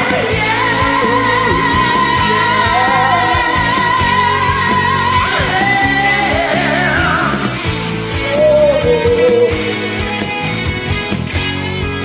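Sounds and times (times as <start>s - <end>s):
rock backing track with drum beat: 0.0s - 12.0s.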